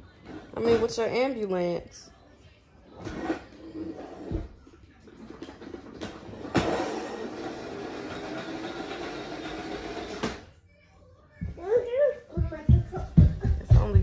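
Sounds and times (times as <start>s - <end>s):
toy motor running on wooden floor: 6.5s - 10.4s.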